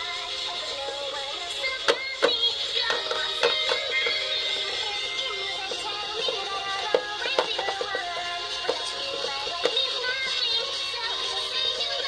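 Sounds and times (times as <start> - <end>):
person singing over music: 0.0 - 12.0.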